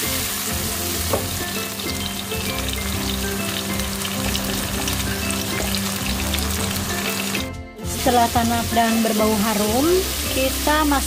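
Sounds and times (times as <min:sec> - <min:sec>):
paste sizzling in hot oil: 0:00.0 - 0:11.0.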